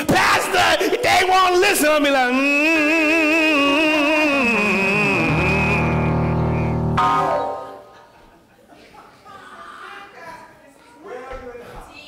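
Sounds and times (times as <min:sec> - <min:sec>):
low organ-like keyboard chord: 0:04.7 - 0:08.1.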